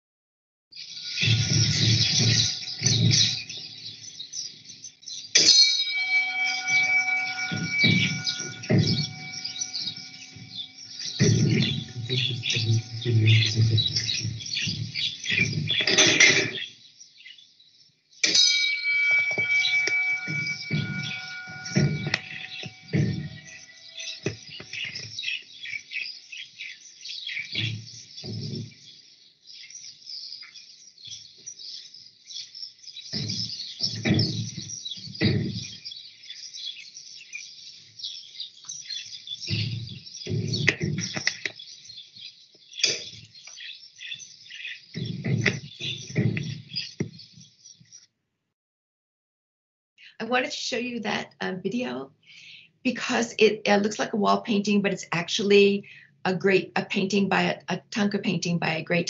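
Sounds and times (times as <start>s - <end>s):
small birds chirping: 0.7s - 48.1s, 50.8s - 59.0s
ringing tone: 5.4s - 16.3s, 18.2s - 25.0s
scattered low sounds: 6.3s - 16.6s, 19.1s - 25.0s.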